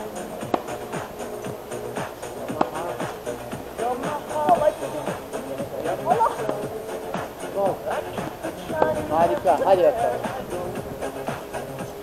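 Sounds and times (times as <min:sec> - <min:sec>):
song playing: 0:00.0 - 0:12.0.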